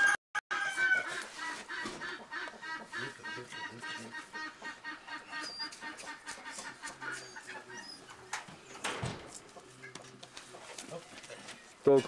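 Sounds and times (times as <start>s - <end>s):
chickens clucking: 0.6s - 12.0s.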